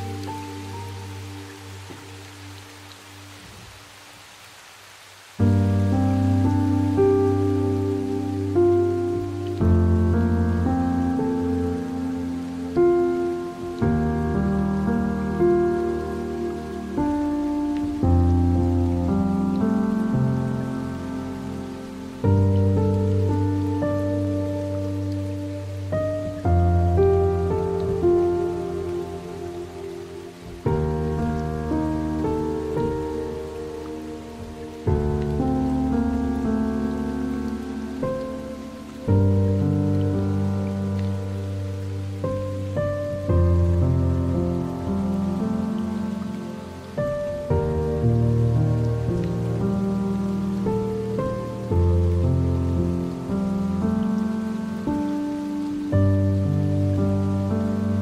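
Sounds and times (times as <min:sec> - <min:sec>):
slow dark piano chords: 0:00.0 - 0:58.0
steady rain: 0:00.0 - 0:58.0.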